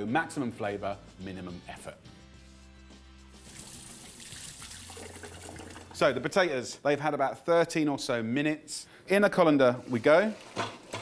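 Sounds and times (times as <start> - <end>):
quiet background music: 0.0 - 10.8
tap water running into sink: 3.4 - 6.0.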